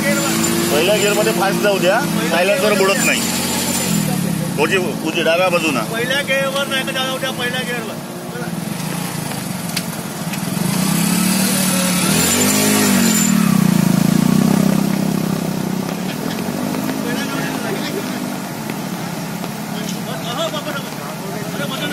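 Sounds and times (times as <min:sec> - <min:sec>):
motorcycle engines revving: 0:00.0 - 0:21.9
rushing water thrown by wheels: 0:00.0 - 0:21.9.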